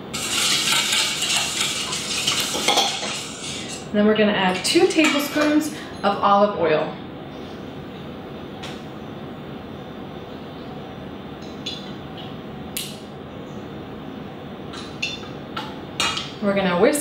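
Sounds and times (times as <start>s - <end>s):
background hiss: 0.0s - 4.0s.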